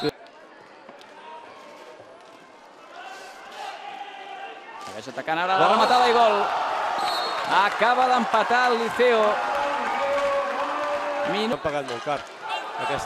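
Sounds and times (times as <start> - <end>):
loud excited shouting: 5.5 - 11.5, 12.4 - 13.0.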